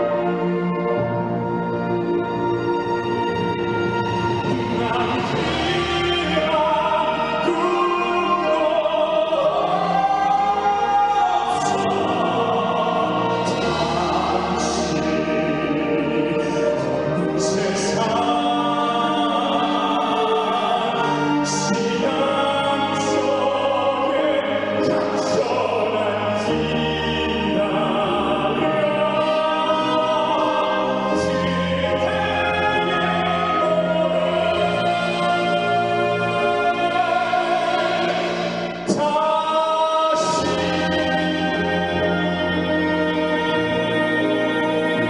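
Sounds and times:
instrumental accompaniment: 0.0s - 45.0s
man singing a ballad: 4.4s - 45.0s.

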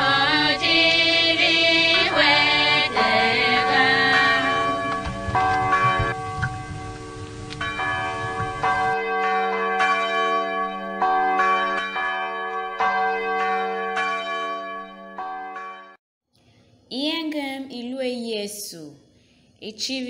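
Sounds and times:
church bells ringing: 0.0s - 16.0s.

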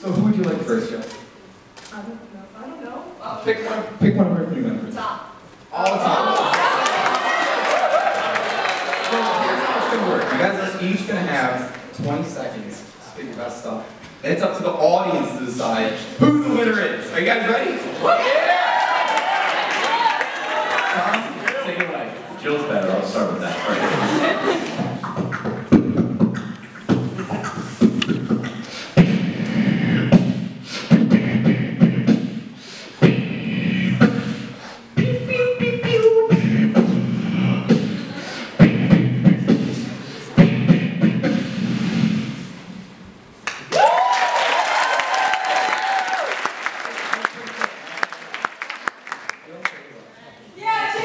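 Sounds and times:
audience cheering and applauding: 5.9s - 10.5s, 18.0s - 22.1s, 43.4s - 49.7s
beatboxing into microphone: 24.6s - 43.0s
deep bass hums: 35.0s - 38.0s
held whoop: 43.7s - 46.4s.

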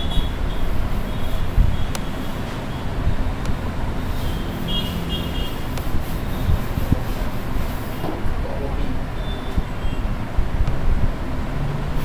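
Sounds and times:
chalk squeaking on blackboard: 0.0s - 2.9s, 4.0s - 8.3s
low traffic rumble: 0.0s - 12.0s
sharp chalk tick: 1.6s - 2.2s, 5.6s - 7.9s.

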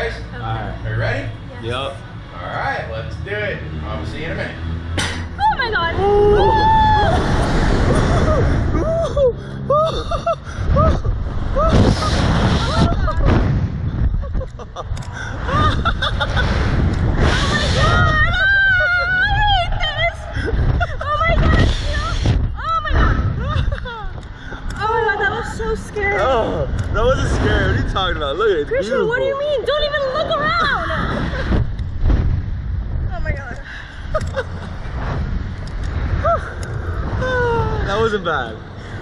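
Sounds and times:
wind buffeting microphone: 5.6s - 39.0s
people screaming: 5.9s - 10.1s, 17.2s - 20.3s
riders laughing: 6.7s - 13.4s, 14.0s - 16.8s, 33.7s - 35.0s.

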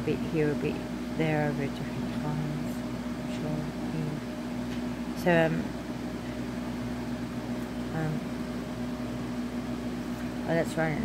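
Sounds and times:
woman saying um: 0.0s - 4.2s, 5.2s - 5.7s, 7.9s - 8.3s, 10.5s - 11.0s
low machine hum: 0.0s - 11.0s.

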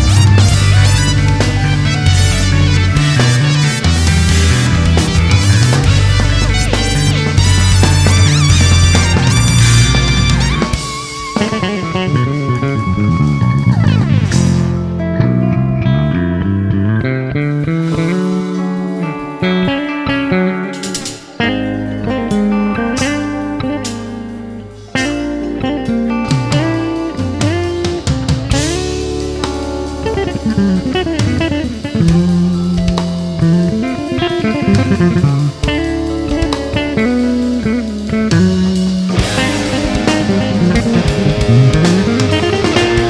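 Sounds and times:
drum fills: 0.0s - 14.8s, 20.8s - 43.0s
electric bass melodic line: 0.0s - 43.0s
live rock band playing: 0.0s - 43.0s.

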